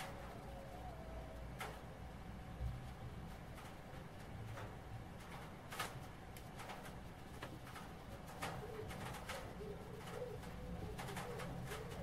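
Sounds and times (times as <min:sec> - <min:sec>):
bird cooing: 0:00.0 - 0:02.0, 0:08.0 - 0:12.0.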